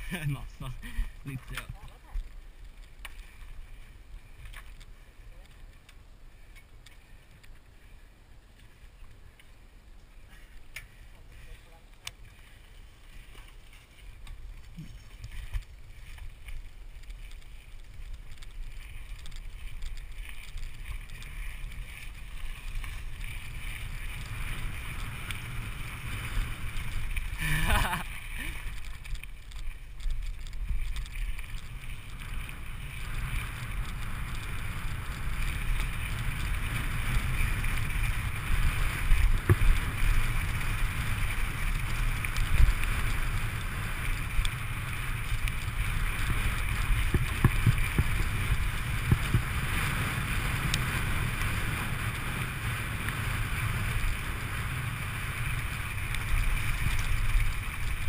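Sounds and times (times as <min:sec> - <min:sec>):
bike tyres on gravel: 0:00.0 - 0:58.0
bike clicks: 0:00.7 - 0:07.8, 0:08.5 - 0:58.0
wind on microphone: 0:30.1 - 0:58.0.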